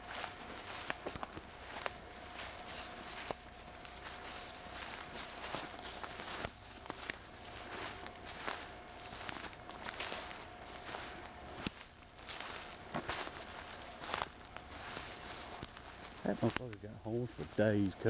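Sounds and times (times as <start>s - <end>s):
footsteps crunching leaf litter: 0.0s - 18.0s.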